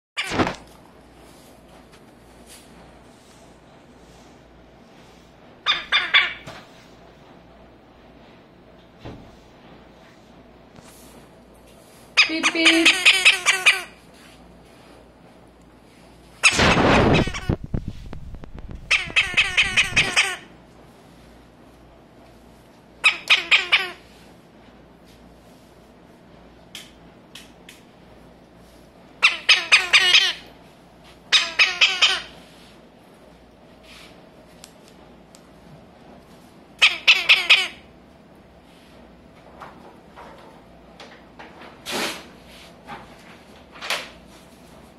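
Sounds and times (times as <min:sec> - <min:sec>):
parrot squawking: 0:00.2 - 0:00.5, 0:05.6 - 0:06.6, 0:12.2 - 0:14.0, 0:16.4 - 0:17.6, 0:18.8 - 0:20.5, 0:23.0 - 0:24.0, 0:29.2 - 0:30.5, 0:31.3 - 0:32.4, 0:36.8 - 0:37.9.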